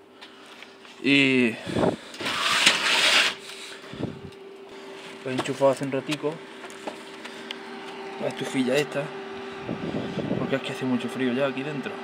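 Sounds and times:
faint steady hum: 0:00.0 - 0:12.0
rustling scraping noise: 0:02.2 - 0:03.8.

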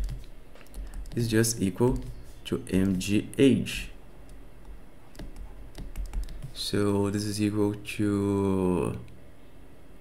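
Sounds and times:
low steady hum: 0:00.0 - 0:10.0
stylus tapping on tablet screen: 0:04.6 - 0:06.6.

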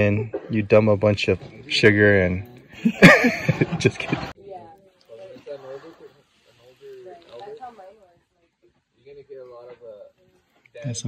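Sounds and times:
faint background talking: 0:00.0 - 0:11.0.

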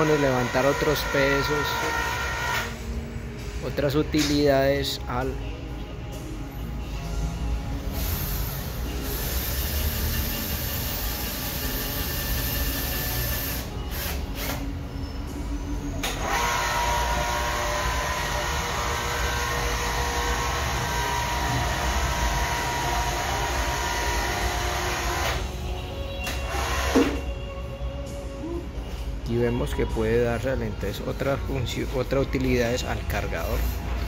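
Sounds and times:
electric drill running: 0:00.1 - 0:02.8, 0:09.0 - 0:14.6, 0:16.2 - 0:25.4, 0:26.5 - 0:27.2
electric hoist motor whine: 0:16.0 - 0:25.5.

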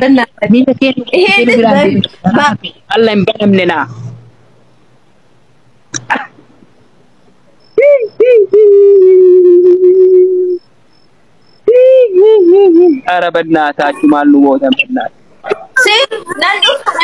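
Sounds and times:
cough-like burst: 0:05.9 - 0:06.4
woman humming: 0:07.9 - 0:10.7.

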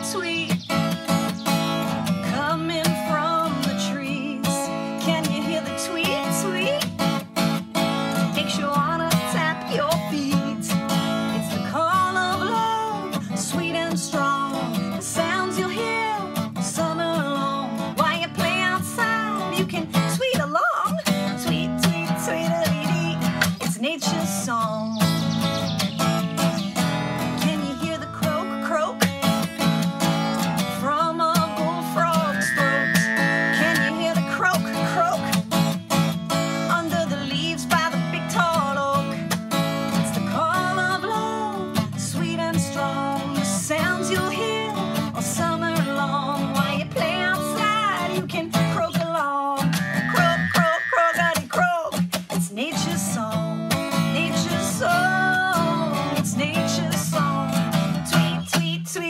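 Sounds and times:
woman singing children's song: 0:00.0 - 0:07.3, 0:08.2 - 0:59.0
acoustic guitar strumming: 0:00.0 - 0:59.0.

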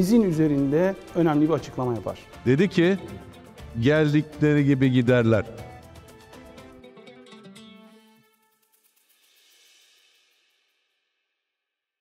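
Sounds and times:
background music with cymbal ticks: 0:00.0 - 0:10.8.

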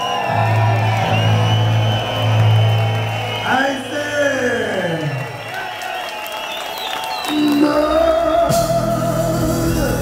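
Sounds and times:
crowd whoops and voices: 0:00.0 - 0:09.0
live reggae band: 0:07.2 - 0:10.0.

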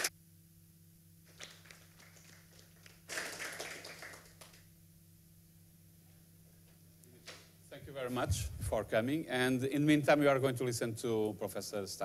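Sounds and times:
thin applause: 0:01.2 - 0:04.7.

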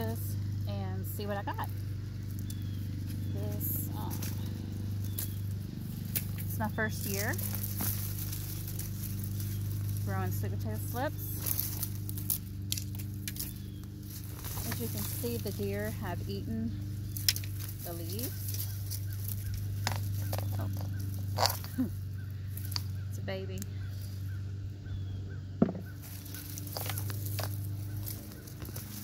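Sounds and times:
vines rustling as pulled: 0:00.0 - 0:24.4, 0:25.9 - 0:29.0
low machine hum: 0:00.0 - 0:29.0.

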